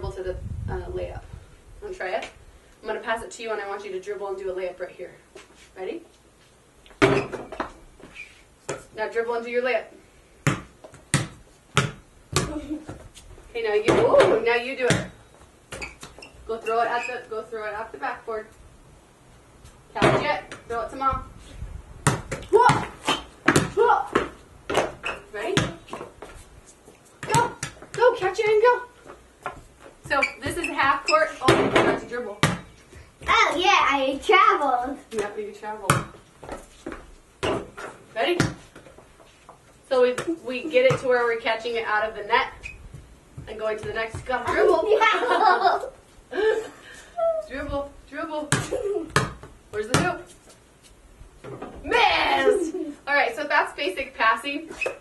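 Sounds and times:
basketball banging on backboard: 7.0s - 7.6s, 31.4s - 32.7s
basketball bouncing: 7.0s - 7.7s, 10.4s - 13.0s, 13.8s - 16.2s, 22.0s - 26.1s, 27.2s - 28.5s, 30.0s - 33.4s, 35.9s - 36.6s, 37.4s - 38.6s, 40.1s - 41.2s, 42.6s - 44.8s, 48.5s - 50.2s
young child's voice: 33.2s - 35.1s, 44.5s - 45.5s, 47.2s - 47.5s, 51.8s - 53.0s.

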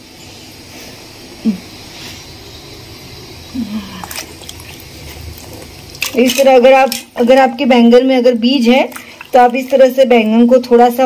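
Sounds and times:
water trickling into steel bowl: 3.4s - 11.0s.

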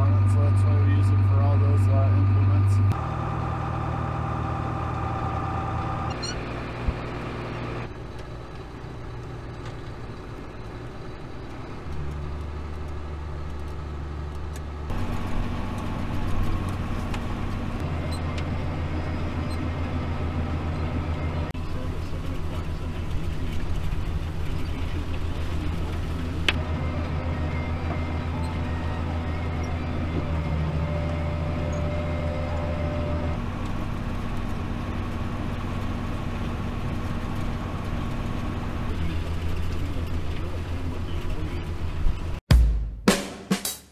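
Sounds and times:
tractor diesel engine running: 0.0s - 42.4s
stalk shredder running: 11.8s - 41.0s.

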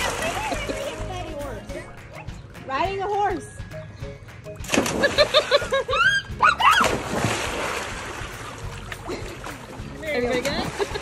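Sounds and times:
splash into swimming pool: 4.6s - 5.7s, 6.6s - 9.8s.

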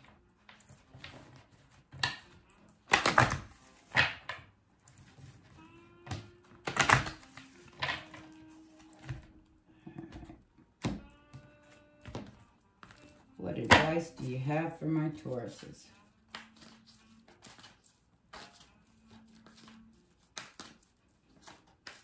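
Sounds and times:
cards riffle shuffling: 0.0s - 9.4s, 15.2s - 22.0s
card handling: 0.0s - 14.5s, 15.1s - 22.0s.

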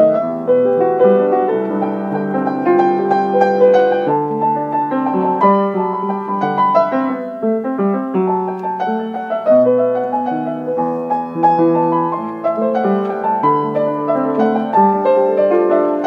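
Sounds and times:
upright piano improvisation: 0.0s - 16.0s.

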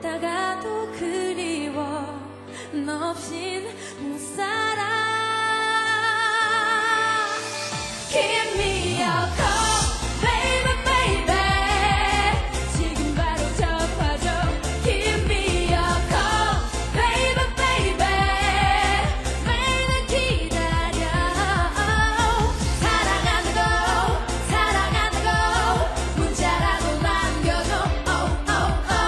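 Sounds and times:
female duo singing pop song: 0.0s - 29.0s
backing track with steady beat: 7.7s - 29.0s.

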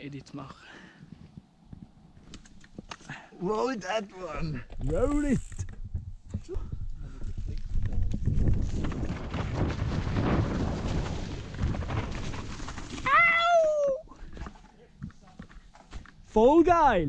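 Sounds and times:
bike rattling: 4.5s - 13.6s
bike tyres rumbling over dirt and leaves: 7.3s - 14.6s
high whoop falling in pitch: 13.0s - 14.1s.

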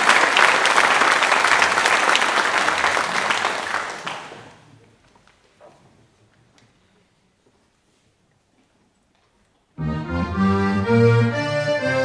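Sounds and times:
accordion orchestra playing chords: 9.8s - 12.0s.

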